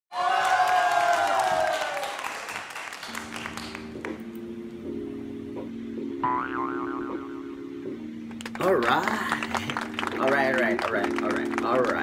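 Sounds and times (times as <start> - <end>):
steady held chord: 3.1 - 12.0.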